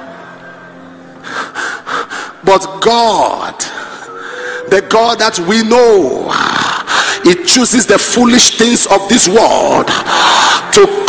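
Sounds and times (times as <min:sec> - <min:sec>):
man gasping into microphone: 0:03.7 - 0:04.7, 0:06.4 - 0:07.3, 0:09.9 - 0:11.0.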